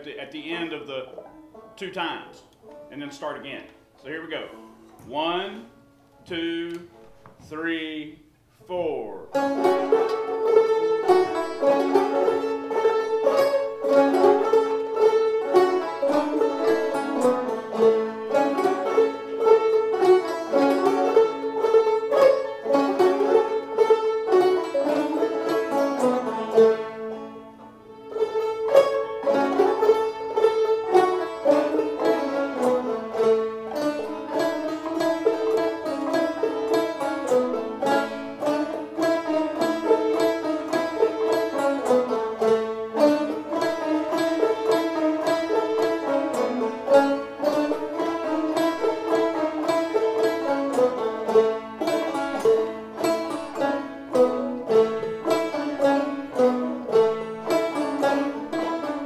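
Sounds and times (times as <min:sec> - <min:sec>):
banjos playing in unison: 0:00.0 - 0:07.4, 0:09.1 - 0:59.0.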